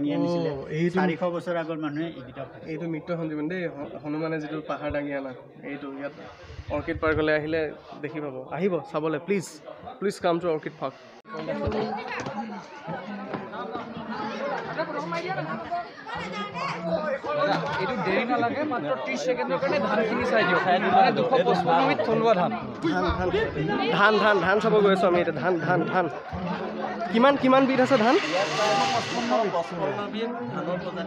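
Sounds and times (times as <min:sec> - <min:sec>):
overlapping chatter: 0:00.0 - 0:31.0.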